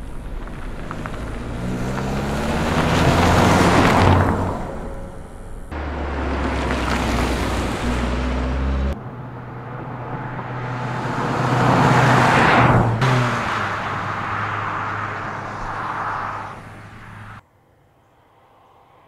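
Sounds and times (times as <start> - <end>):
car driving past: 0.1 - 17.4.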